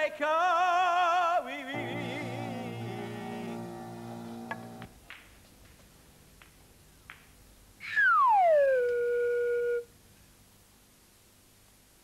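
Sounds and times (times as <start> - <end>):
whistle sliding down in pitch: 7.8 - 9.8.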